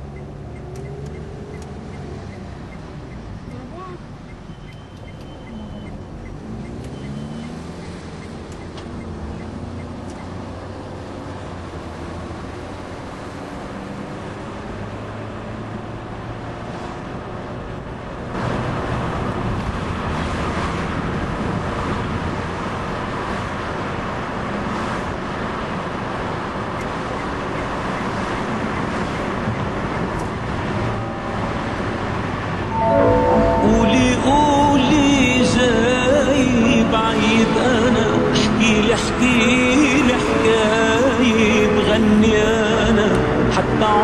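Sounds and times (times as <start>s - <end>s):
car road and engine noise: 0.0s - 44.0s.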